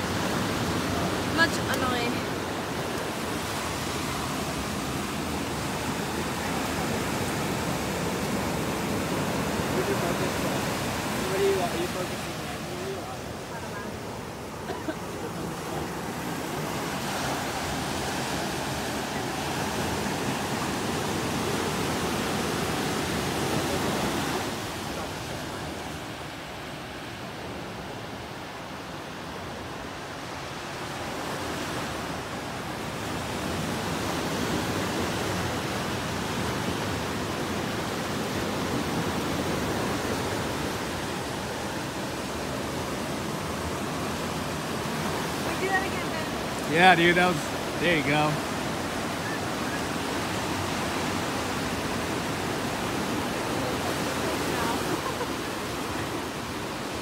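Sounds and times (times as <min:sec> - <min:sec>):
ocean surf breaking on beach: 0:00.0 - 0:57.0.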